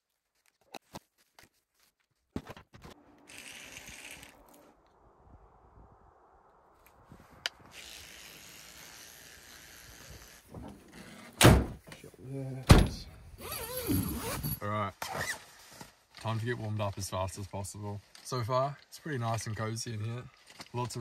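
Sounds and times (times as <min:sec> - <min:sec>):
heavy thunk: 0:11.4 - 0:11.8, 0:12.7 - 0:13.1.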